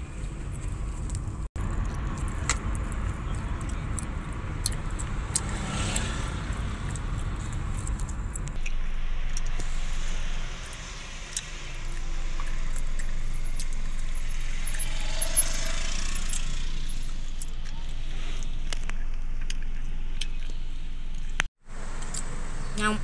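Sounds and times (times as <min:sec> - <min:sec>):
car road and engine noise: 0:00.0 - 0:23.0.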